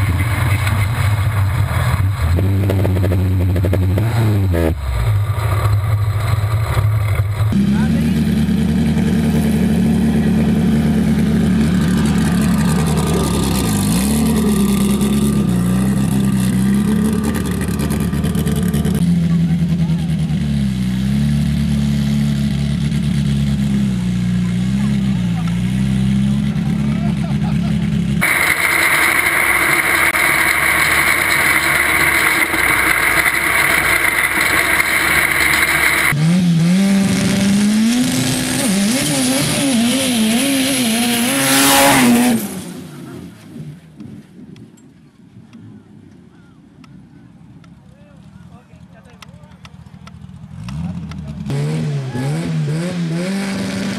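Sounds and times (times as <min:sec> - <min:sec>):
buggy engine revving: 0:00.0 - 0:44.0, 0:48.3 - 0:53.9
loud steady hiss: 0:28.2 - 0:36.1.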